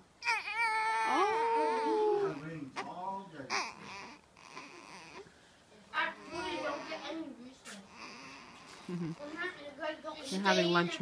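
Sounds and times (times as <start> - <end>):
infant crying: 0.2 - 5.3, 6.2 - 7.2, 7.8 - 8.8
infant whimpering: 0.2 - 5.3, 6.2 - 7.2, 7.8 - 9.4.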